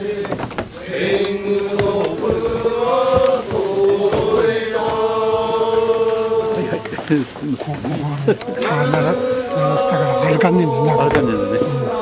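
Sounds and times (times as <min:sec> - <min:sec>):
person chanting long notes: 0:08.4 - 0:12.0.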